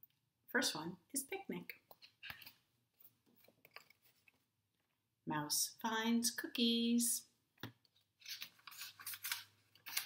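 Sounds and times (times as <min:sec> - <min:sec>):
paper pages turning: 0:01.9 - 0:04.5, 0:08.0 - 0:10.0.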